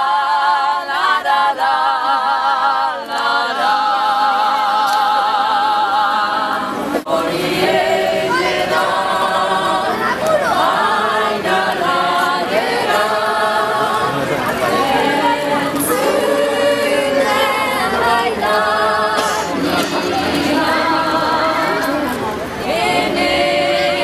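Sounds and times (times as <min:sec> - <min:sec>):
women singing a cappella: 0:00.0 - 0:24.0.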